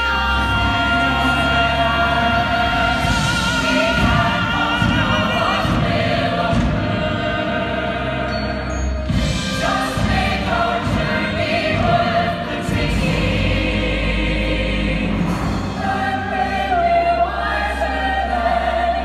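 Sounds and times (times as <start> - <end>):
chorus singing long notes: 0.0 - 19.0.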